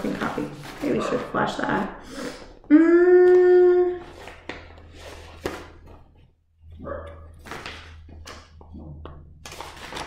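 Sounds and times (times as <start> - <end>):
paper rustling: 0.0 - 1.6, 4.0 - 6.2, 7.4 - 8.7, 9.4 - 10.0.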